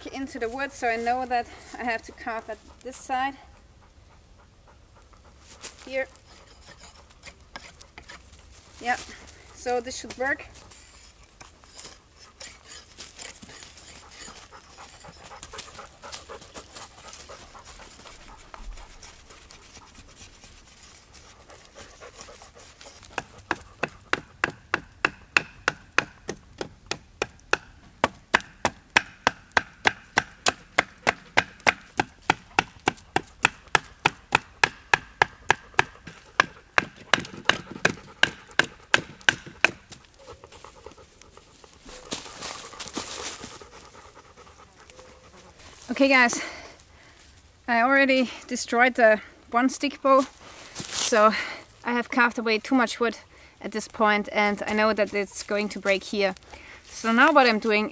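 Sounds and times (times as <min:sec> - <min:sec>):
blade scraping wood: 0:05.4 - 0:26.2
knife shaving wood: 0:05.6 - 0:26.1.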